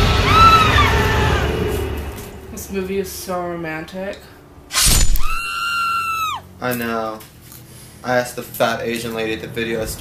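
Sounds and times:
long high-pitched scream: 0.1s - 1.5s, 5.0s - 6.5s
sudden smashing crash: 4.7s - 5.4s.

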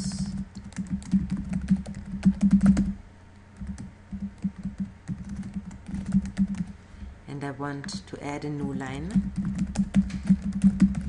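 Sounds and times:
typing on computer keyboard: 0.1s - 3.0s, 3.6s - 6.7s, 9.1s - 11.0s.

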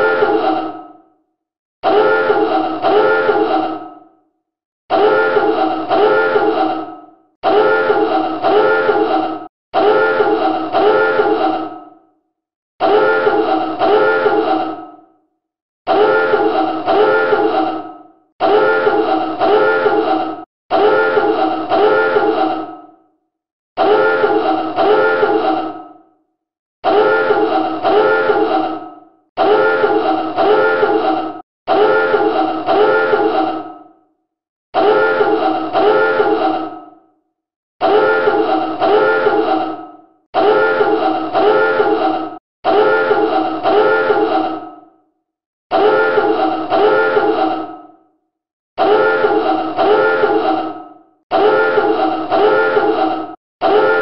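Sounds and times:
submarine dive alarm horn blasts: 1.8s - 3.4s, 5.0s - 6.6s, 7.4s - 9.0s, 9.8s - 11.3s, 12.8s - 14.4s, 18.4s - 20.0s, 27.0s - 28.4s, 31.7s - 33.2s, 34.8s - 36.3s, 38.9s - 39.4s, 40.4s - 41.9s, 42.7s - 44.2s, 45.7s - 47.3s, 48.8s - 50.3s, 51.3s - 52.9s, 53.6s - 54.0s.

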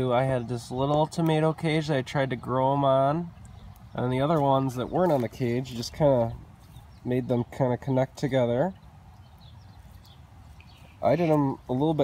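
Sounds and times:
bird chirps: 3.3s - 12.0s.

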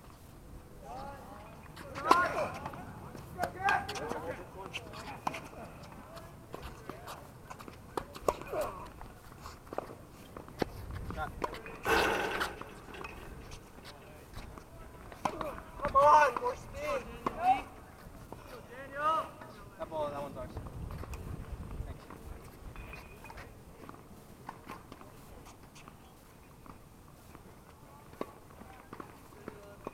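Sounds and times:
rackets striking tennis ball: 11.4s - 13.8s.

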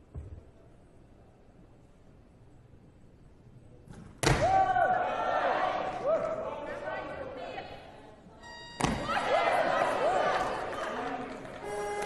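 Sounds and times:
voices shouting encouragement: 4.6s - 7.8s, 9.0s - 11.6s.

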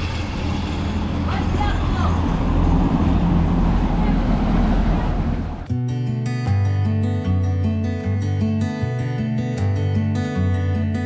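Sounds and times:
road traffic rumble: 0.0s - 5.7s
vehicle engine hum: 0.0s - 5.7s.

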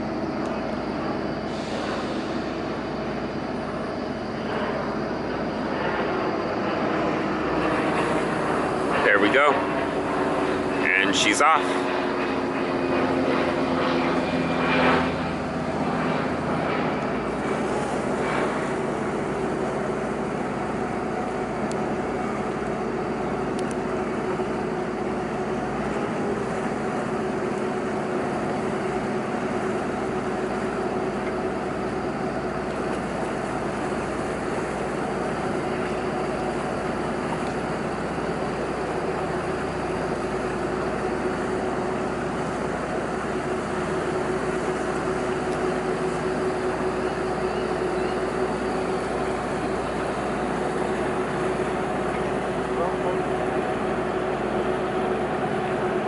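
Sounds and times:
boat diesel engine drone: 0.0s - 56.0s.

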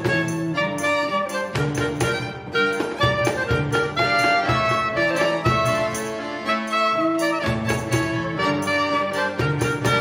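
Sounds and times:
accordion: 0.0s - 10.0s
clarinet melody: 0.0s - 10.0s
violin: 0.0s - 10.0s.

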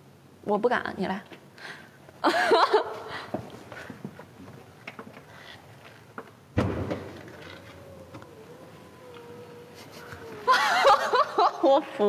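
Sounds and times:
tailgate releasing thud: 6.6s - 7.6s
tailgate motor whining: 6.6s - 9.9s.

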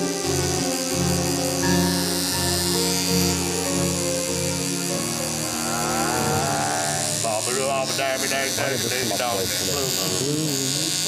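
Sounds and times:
tattoo machine buzzing: 0.0s - 11.0s.

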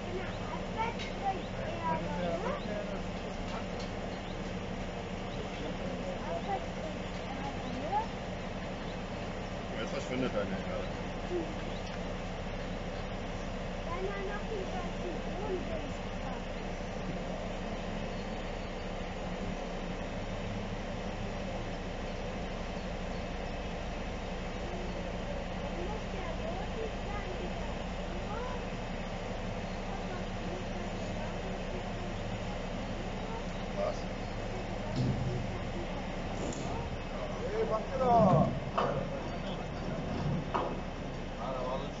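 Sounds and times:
diesel engine humming: 0.0s - 42.0s.

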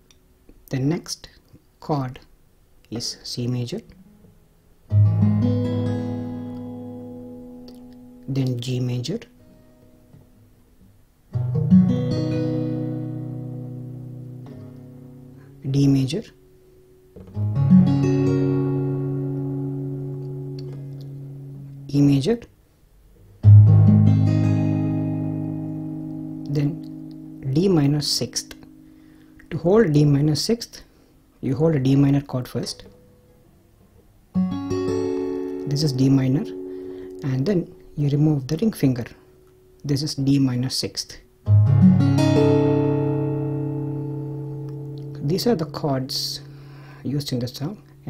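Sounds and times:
acoustic guitar chord ringing: 4.0s - 22.3s, 23.4s - 48.0s.

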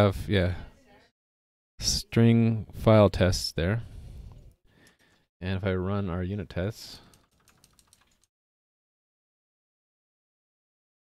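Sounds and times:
keyboard typing: 7.0s - 8.3s.

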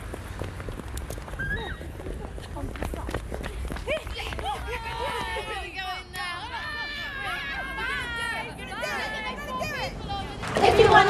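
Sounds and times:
footsteps on pavement: 0.0s - 6.5s
women shouting and laughing: 3.7s - 11.0s.

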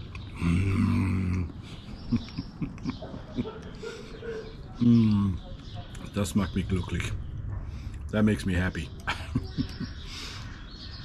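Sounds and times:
man chuckling while chewing: 1.8s - 3.8s, 9.0s - 10.0s.

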